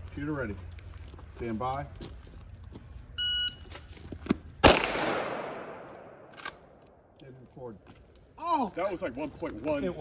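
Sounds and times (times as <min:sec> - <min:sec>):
pistol shot echoing: 0:04.6 - 0:06.3.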